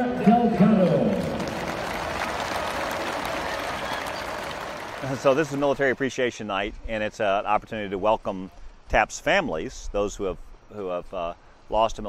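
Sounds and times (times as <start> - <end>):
crowd applauding: 0.3 - 6.1.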